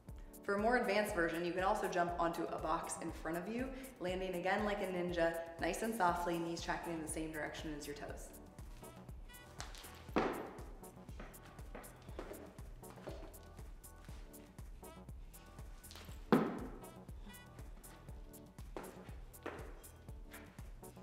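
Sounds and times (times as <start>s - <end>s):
background music with steady beat: 0.0s - 21.0s
feet landing on wooden box: 9.6s - 13.3s, 16.2s - 16.9s, 18.8s - 19.8s.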